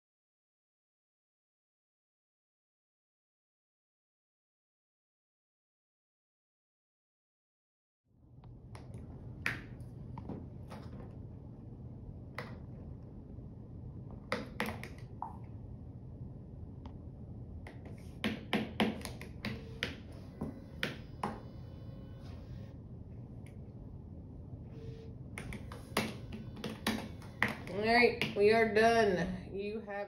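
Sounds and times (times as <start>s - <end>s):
low room and machine hum: 8.1s - 30.0s.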